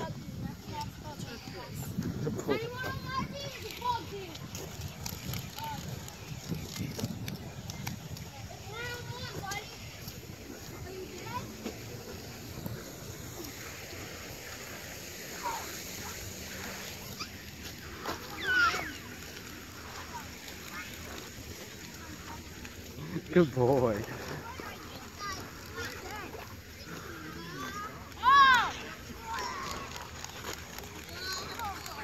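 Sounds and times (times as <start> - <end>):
children calling and shrieking: 0.0 - 23.3, 24.1 - 32.0
footsteps through wood-chip mulch: 2.0 - 32.0.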